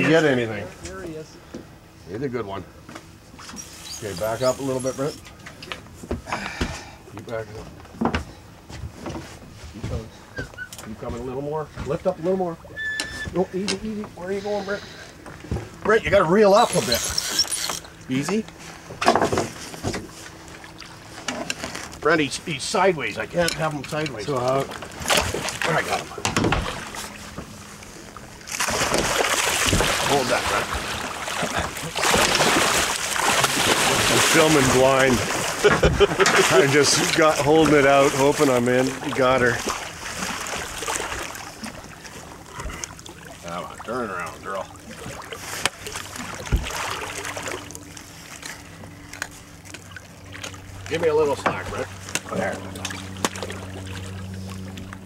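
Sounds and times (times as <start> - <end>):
boat engine humming: 0.0 - 55.0
water sloshing and splashing: 8.9 - 55.0.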